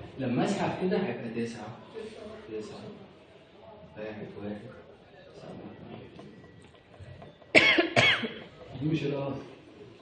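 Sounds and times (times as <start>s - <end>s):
throat clearing: 7.5s - 8.5s
person coughing: 7.6s - 8.4s.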